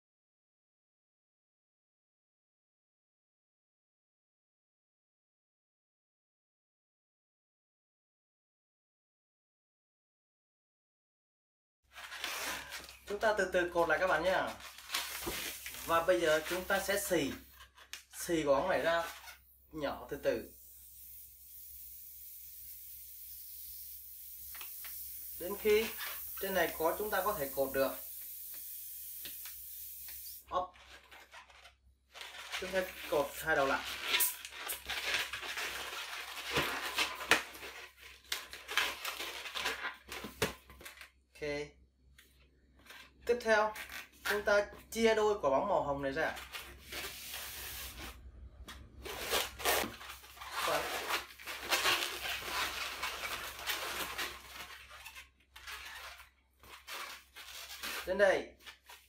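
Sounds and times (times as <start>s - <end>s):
air hissing out of a balloon: 20.1s - 30.5s, 32.8s - 34.8s, 47.0s - 48.1s.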